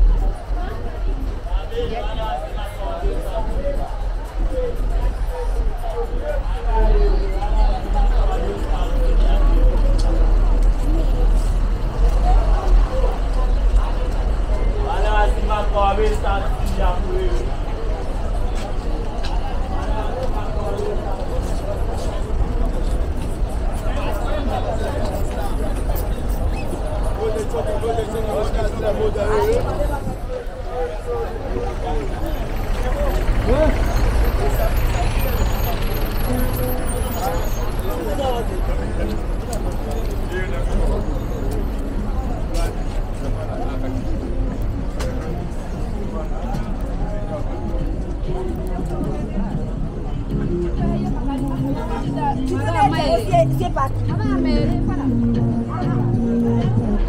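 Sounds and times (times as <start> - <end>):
indistinct chatter: 0.0 - 57.0
passers-by talking: 0.0 - 57.0
traffic rumble: 0.0 - 57.0.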